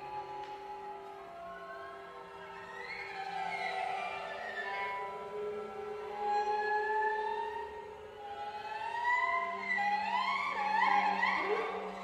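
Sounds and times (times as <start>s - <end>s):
violin sliding tones: 0.0s - 12.0s.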